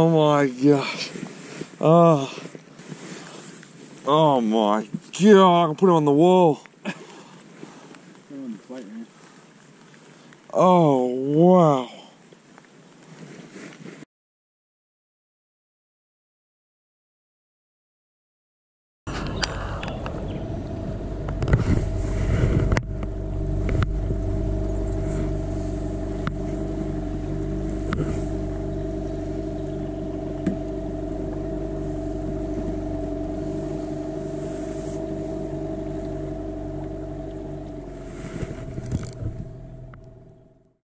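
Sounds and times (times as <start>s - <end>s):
boat motor droning: 0.0s - 9.1s, 19.1s - 40.8s
loud thumps: 21.2s - 40.4s.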